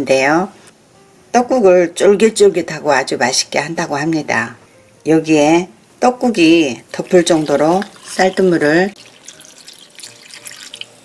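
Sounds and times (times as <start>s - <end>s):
water pouring into glass container: 6.9s - 11.0s.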